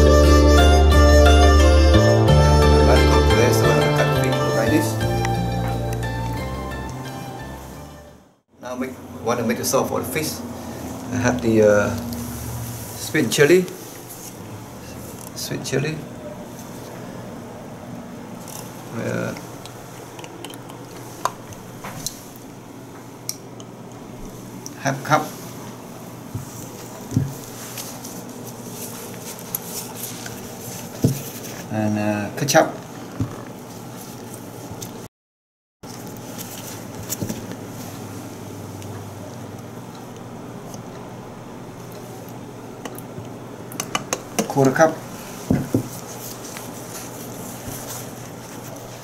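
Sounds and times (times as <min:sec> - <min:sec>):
low room hum: 0:02.8 - 0:35.1.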